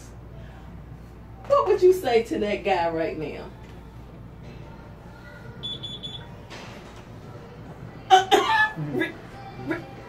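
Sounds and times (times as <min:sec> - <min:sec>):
high-pitched electronic beeps: 0:05.6 - 0:06.2.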